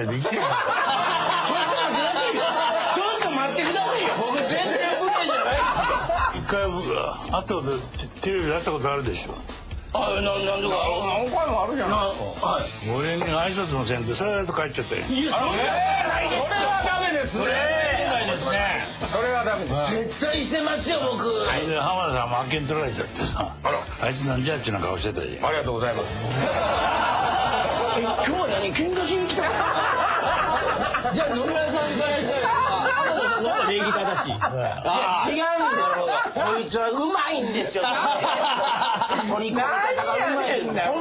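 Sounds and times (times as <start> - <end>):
men talking: 0.0 - 41.0.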